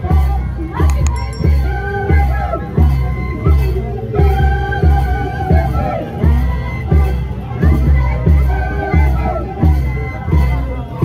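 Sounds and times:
crowd voices: 0:00.0 - 0:11.0
melody: 0:00.9 - 0:02.0.

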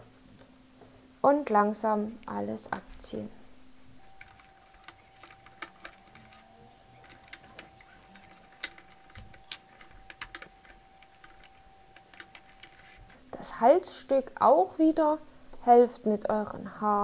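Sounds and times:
faint steady whine: 0:00.0 - 0:17.0.

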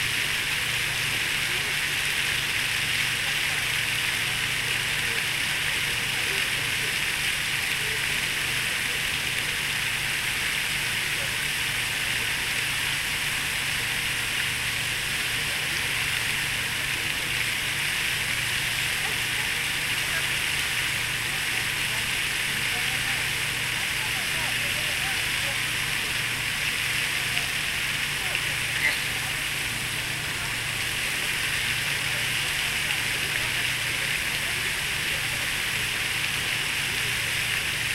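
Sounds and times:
fountain water splashing: 0:00.0 - 0:37.9.

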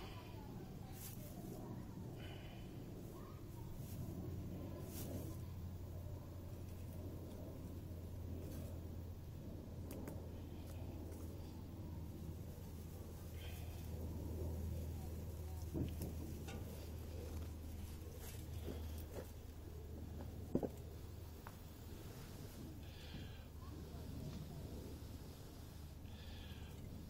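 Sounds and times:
steady low hum: 0:00.0 - 0:27.0
dry grass rustling and crackling: 0:00.8 - 0:09.0, 0:12.1 - 0:23.4.

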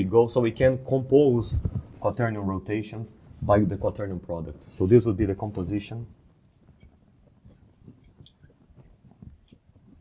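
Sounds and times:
marker squeaking on glass: 0:02.4 - 0:03.1, 0:06.5 - 0:10.0.

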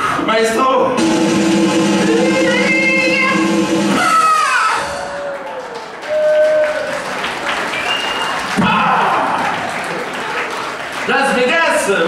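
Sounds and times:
audience applauding and cheering: 0:01.6 - 0:12.0
crowd shouting: 0:02.0 - 0:07.1, 0:07.8 - 0:10.4.

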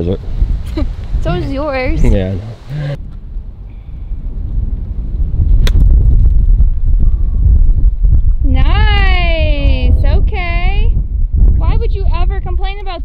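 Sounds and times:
wind on microphone: 0:00.0 - 0:13.0
person speaking: 0:00.7 - 0:03.0.

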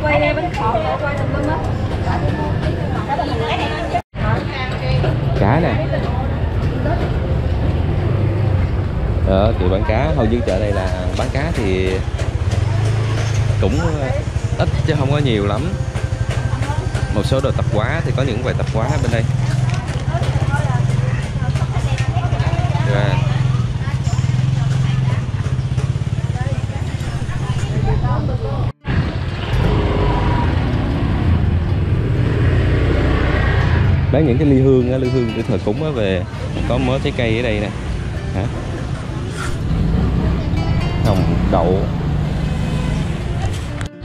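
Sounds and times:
people talking: 0:00.0 - 0:07.6, 0:09.2 - 0:12.0, 0:12.6 - 0:15.8, 0:16.4 - 0:30.8, 0:34.1 - 0:42.0
motorbike engine idling: 0:00.0 - 0:32.6.

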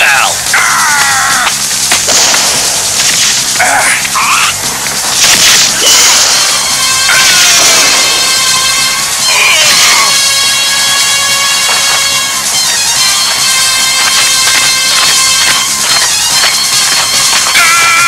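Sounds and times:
background music: 0:00.0 - 0:18.0
cartoon hits: 0:05.2 - 0:10.2.

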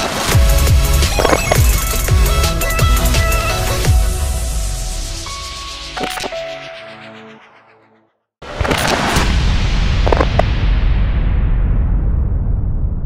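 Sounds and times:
electronic intro music: 0:00.4 - 0:08.3
glitch crackles: 0:01.1 - 0:02.1, 0:08.4 - 0:10.6
loud hit with rumbling tail: 0:09.1 - 0:13.0.

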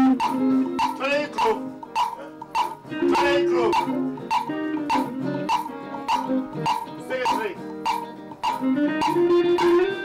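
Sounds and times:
ensemble music groove: 0:00.0 - 0:10.0
sharp percussion hit: 0:00.0 - 0:10.0.

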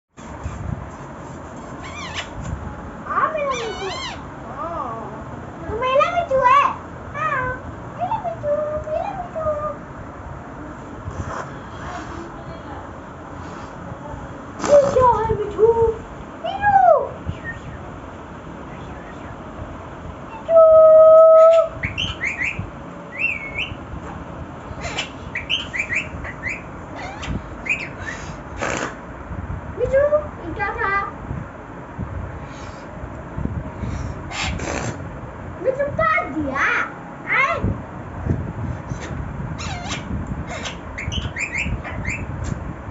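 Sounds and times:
parakeet calling: 0:00.4 - 0:02.5, 0:03.1 - 0:04.4, 0:17.2 - 0:17.9, 0:18.6 - 0:19.5, 0:21.3 - 0:23.9, 0:24.7 - 0:29.1, 0:32.4 - 0:32.9, 0:33.8 - 0:35.0, 0:38.7 - 0:42.4.

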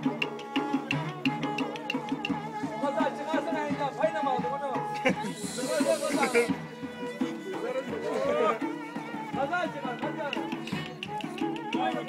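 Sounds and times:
bowed fiddle playing dance tune: 0:00.0 - 0:12.0
drum beating time: 0:00.0 - 0:12.0
hissing rush of noise: 0:05.3 - 0:06.5.

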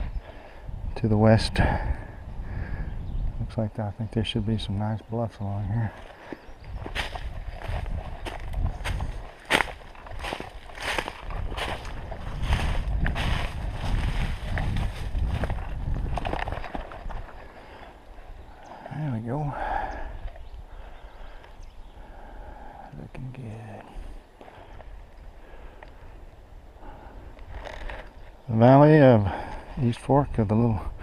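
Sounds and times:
footsteps crunching dry leaves: 0:06.0 - 0:16.7.

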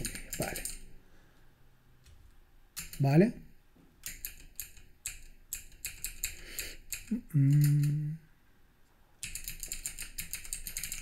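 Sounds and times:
keyboard typing: 0:00.0 - 0:00.9, 0:02.8 - 0:03.1, 0:04.0 - 0:08.1, 0:09.2 - 0:11.0.

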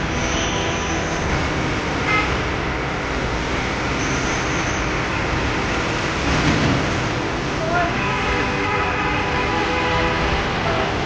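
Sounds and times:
fire engine pump running: 0:00.0 - 0:11.0.

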